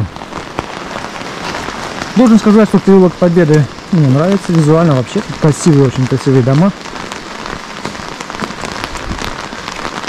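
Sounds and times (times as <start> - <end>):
raindrops ticking: 0.0 - 10.0
steady rain hiss: 0.0 - 10.0.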